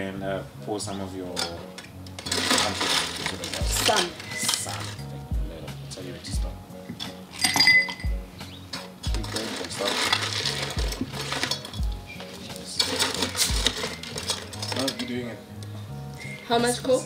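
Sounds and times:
background music with steady beat: 0:00.0 - 0:17.0
ice cubes clinking into glasses: 0:02.2 - 0:05.0, 0:07.4 - 0:08.1, 0:09.1 - 0:11.8, 0:12.4 - 0:15.3
sharp ringing glass clink: 0:07.4 - 0:08.1.

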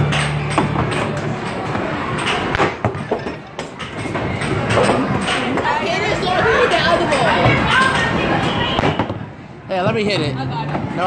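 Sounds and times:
people chattering: 0:00.7 - 0:11.0.

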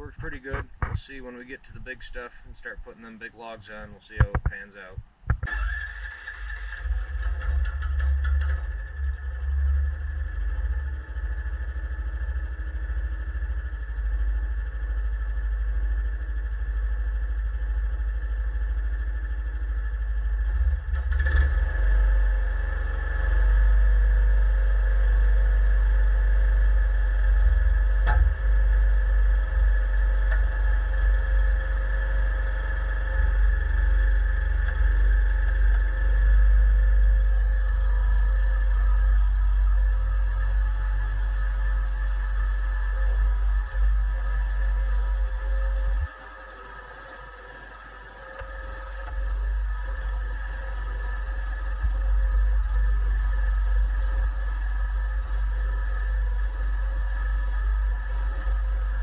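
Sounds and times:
sawmill machinery running: 0:05.4 - 0:59.0
small gas engine running: 0:05.4 - 0:59.0.

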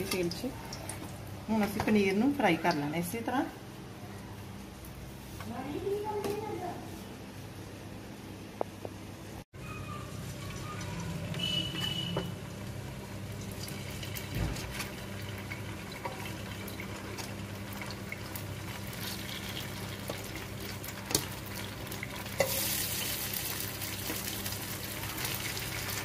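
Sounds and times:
food sizzling in oil: 0:10.1 - 0:26.0.

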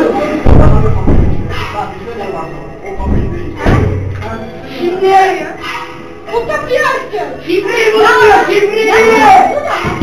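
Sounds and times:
background music: 0:00.0 - 0:10.0
voices: 0:00.0 - 0:10.0
deep dull thuds: 0:00.4 - 0:01.6.

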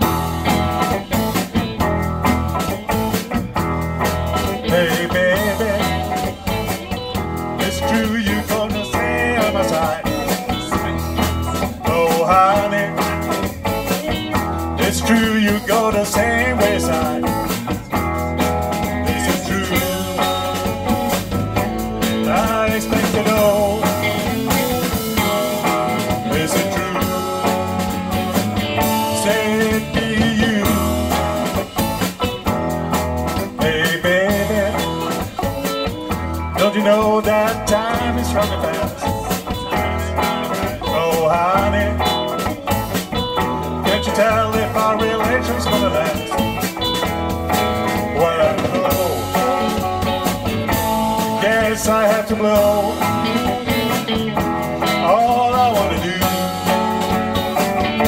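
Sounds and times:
bass guitar: 0:00.0 - 0:58.0
drum kit: 0:00.0 - 0:58.0
electric guitars: 0:00.0 - 0:58.0.

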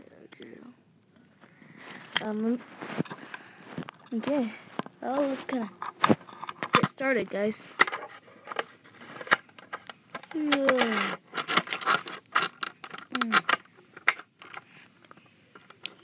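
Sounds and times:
toy car clicks and taps: 0:09.6 - 0:14.6.

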